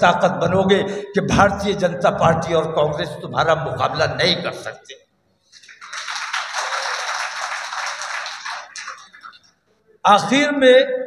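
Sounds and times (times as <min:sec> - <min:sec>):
audience clapping: 0:05.5 - 0:09.6.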